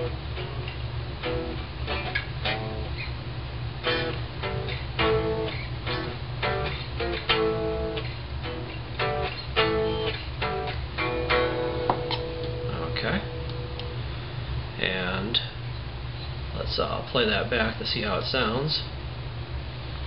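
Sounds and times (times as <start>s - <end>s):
clean electric guitar notes: 0.0s - 3.2s, 3.8s - 14.2s
low steady hum: 0.0s - 20.0s.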